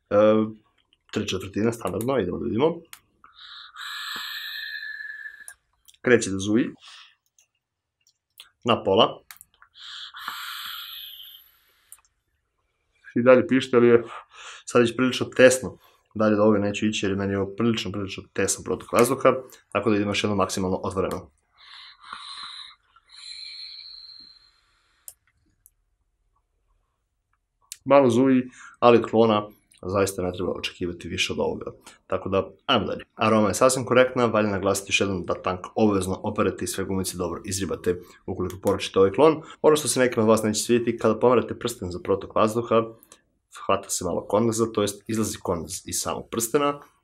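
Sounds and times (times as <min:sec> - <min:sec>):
hissing whistle with buzz: 0:03.4 - 0:05.6, 0:09.9 - 0:11.8, 0:23.2 - 0:24.7.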